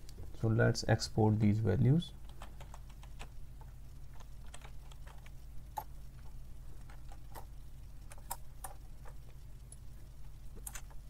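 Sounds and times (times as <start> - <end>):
steady low hum: 0.0 - 11.0
computer keyboard typing: 2.2 - 3.4, 4.1 - 5.9, 6.8 - 9.2, 10.6 - 11.0.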